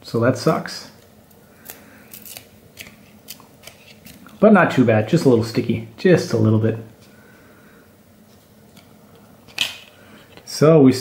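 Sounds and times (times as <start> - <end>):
trading cards peeling apart: 1.3 - 4.4.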